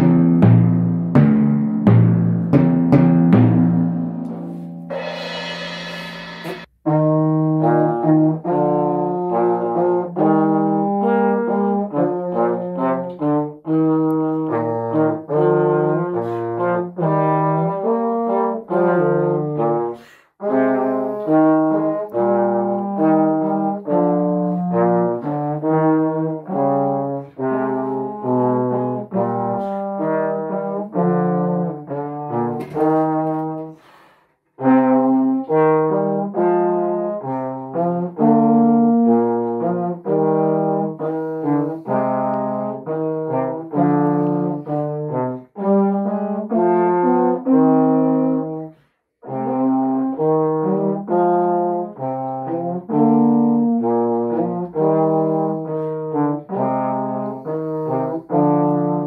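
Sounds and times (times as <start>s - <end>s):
trombone duet: 4.3s - 34.0s, 34.6s - 59.0s.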